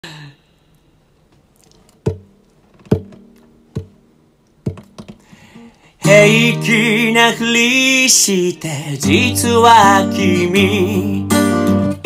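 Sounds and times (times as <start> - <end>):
guitar strums: 1.9 - 7.4, 9.0 - 12.0.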